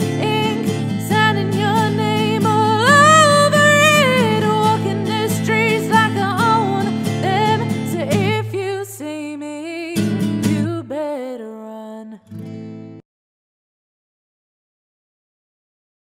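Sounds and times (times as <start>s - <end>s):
guitar chords: 0.0s - 11.0s.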